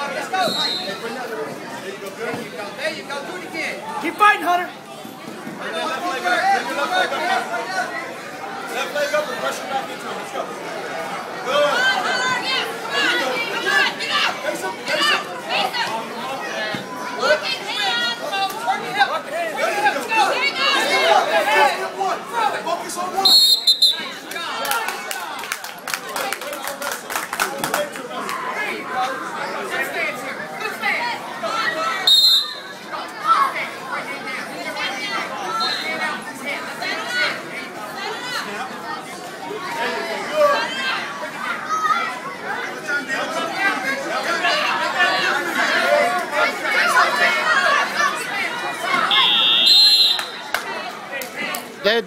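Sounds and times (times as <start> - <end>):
crowd chatter: 0.0 - 52.0
referee's whistle blast: 0.4 - 1.1, 23.2 - 24.1, 32.1 - 32.7, 49.1 - 50.4.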